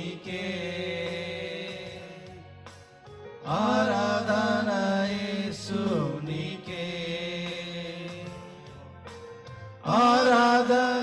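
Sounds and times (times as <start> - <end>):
men singing worship song: 0.0 - 9.0, 9.8 - 11.0
musical backing: 0.0 - 11.0.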